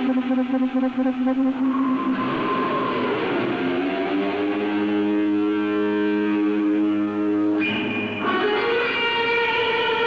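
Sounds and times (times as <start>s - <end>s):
guitar chords ringing: 0.0s - 10.0s.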